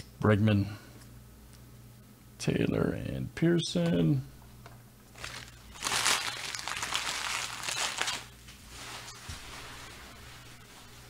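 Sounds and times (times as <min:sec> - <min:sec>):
foil wrappers crinkling: 0:05.1 - 0:09.2.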